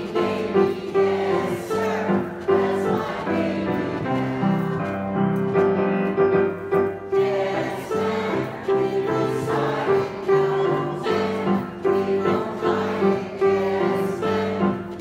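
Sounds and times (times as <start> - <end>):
mixed choir singing: 0.0 - 5.4, 6.8 - 15.0
grand piano: 0.0 - 15.0.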